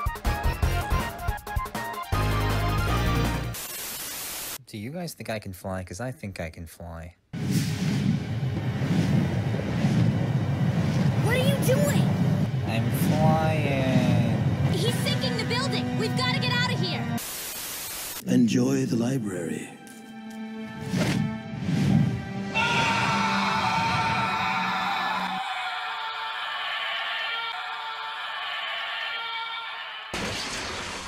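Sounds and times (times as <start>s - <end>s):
rushing wind rumble: 7.4s - 15.4s
music with sustained notes: 18.9s - 22.6s.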